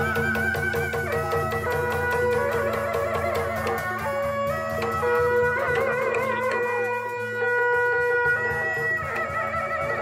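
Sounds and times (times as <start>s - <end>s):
drumming: 0.0s - 10.0s.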